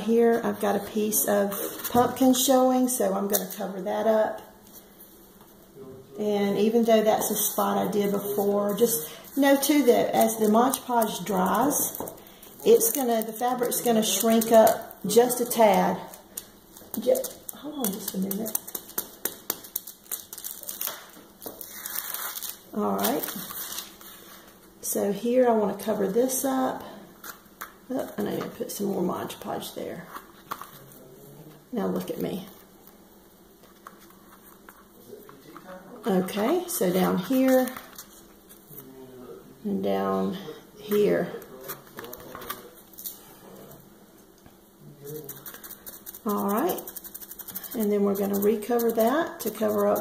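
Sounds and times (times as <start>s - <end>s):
fabric strip rustling and crinkling: 16.7s - 24.6s
sponge brush scratchy rubbing: 45.0s - 50.0s.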